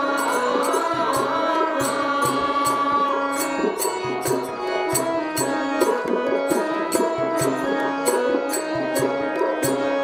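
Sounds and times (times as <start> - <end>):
person singing long held notes: 0.0 - 4.2
hand drum: 0.0 - 10.0.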